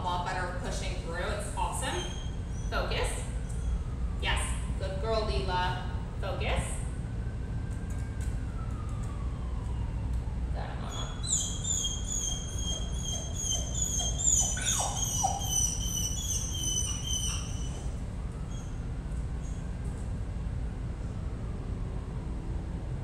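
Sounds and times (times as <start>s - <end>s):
low background rumble: 0.0s - 23.0s
dog whining: 1.7s - 2.8s, 10.9s - 18.8s.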